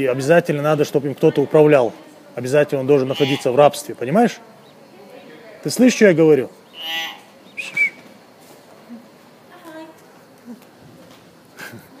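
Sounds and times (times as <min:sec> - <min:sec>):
myna harsh buzzy call: 0:03.0 - 0:03.7, 0:06.6 - 0:08.1
myna curving whistle: 0:07.5 - 0:08.1.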